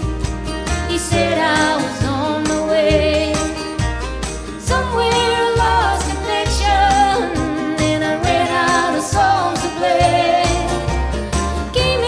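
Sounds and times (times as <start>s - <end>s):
live acoustic country band: 0.0s - 12.0s
person singing: 0.9s - 3.7s, 4.6s - 12.0s.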